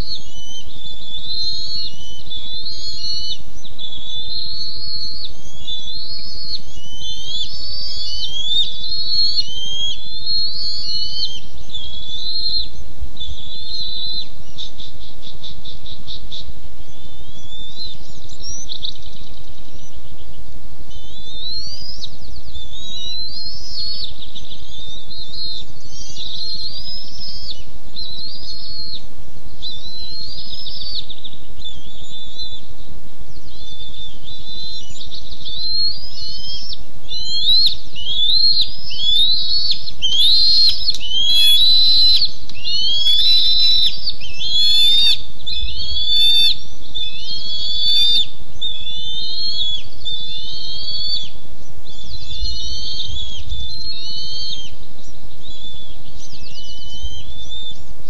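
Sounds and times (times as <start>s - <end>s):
eaglets chittering calls: 0.0s - 16.4s, 29.6s - 32.6s, 33.4s - 57.8s.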